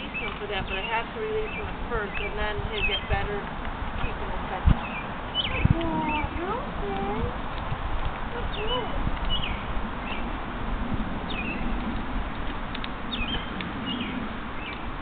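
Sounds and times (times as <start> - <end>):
small birds chirping: 0.0 - 10.4, 11.2 - 15.0.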